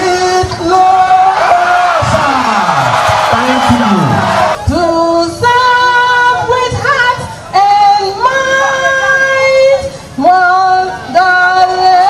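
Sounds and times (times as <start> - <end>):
woman singing into microphone: 4.6 - 12.0.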